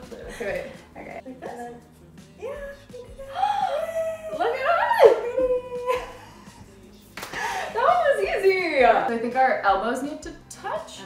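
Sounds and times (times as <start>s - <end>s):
women laughing and squealing: 3.2s - 6.6s.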